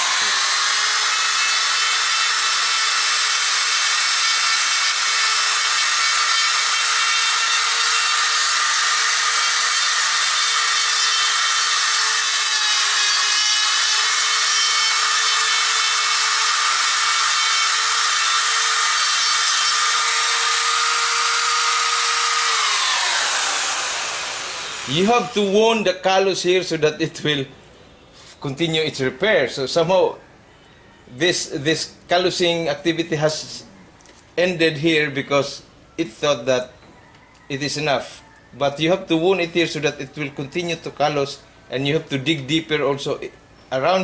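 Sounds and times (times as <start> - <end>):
die grinder whining: 0.0 - 25.6
grinder carving wood: 0.0 - 25.6.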